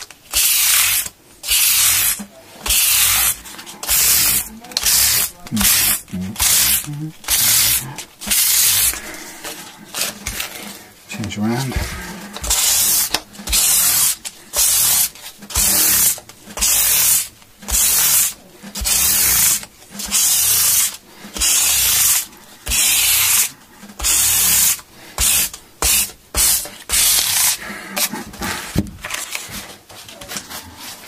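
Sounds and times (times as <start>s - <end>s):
sanding block rubbing on wood: 0.3s - 9.0s, 12.4s - 28.1s.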